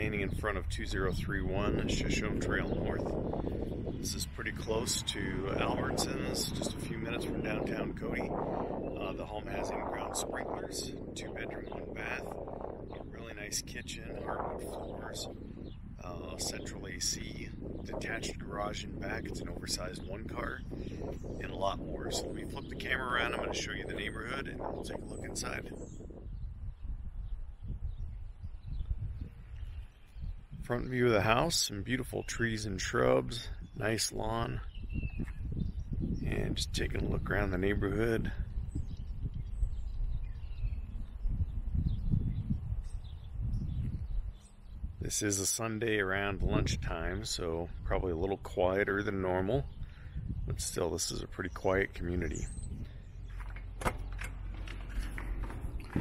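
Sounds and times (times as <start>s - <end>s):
wind buffeting microphone: 0.0s - 56.0s
low rumble: 49.7s - 56.0s
footsteps: 53.3s - 56.0s.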